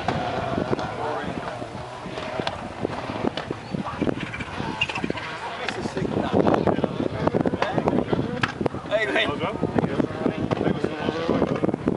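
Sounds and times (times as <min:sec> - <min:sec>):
indistinct voices: 0:00.0 - 0:11.9
wind noise: 0:00.0 - 0:11.9.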